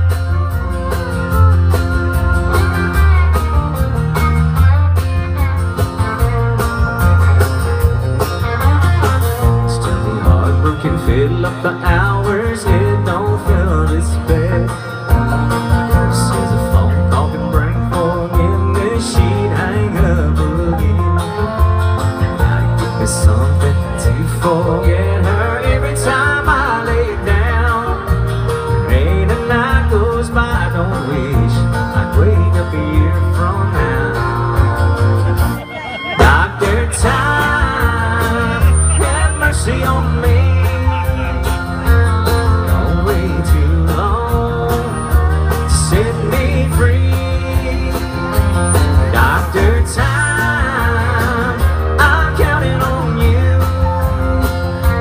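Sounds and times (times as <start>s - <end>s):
bass line: 0.0s - 55.0s
drums: 0.0s - 55.0s
fiddle melody: 0.0s - 55.0s
strummed acoustic guitar: 0.0s - 55.0s.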